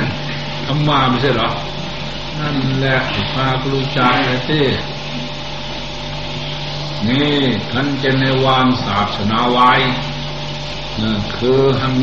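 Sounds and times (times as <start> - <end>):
low hum with faint hiss: 0.0 - 12.0
man speaking: 0.7 - 1.7, 2.4 - 4.9, 11.0 - 12.0.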